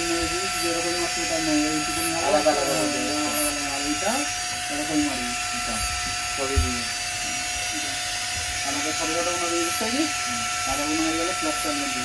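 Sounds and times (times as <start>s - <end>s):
rotary tool high whine: 0.0s - 12.0s.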